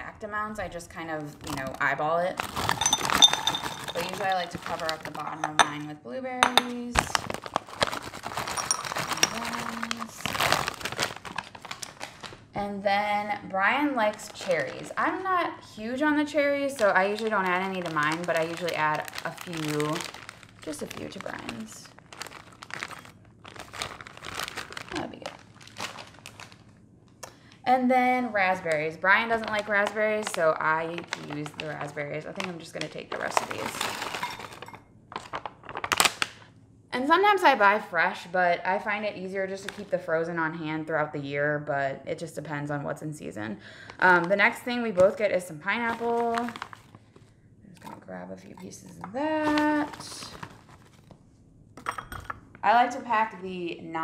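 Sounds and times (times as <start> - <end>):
plastic bag crinkling: 1.4 - 5.7, 7.0 - 12.6, 13.6 - 15.4, 16.3 - 26.8, 29.1 - 36.5, 39.6 - 40.0, 43.8 - 51.2
frozen berries rattling into glass bowl: 2.4 - 5.8, 6.5 - 12.3, 16.6 - 26.6, 29.3 - 36.1
cherries tipped into glass bowl: 2.6 - 4.8, 8.4 - 9.5.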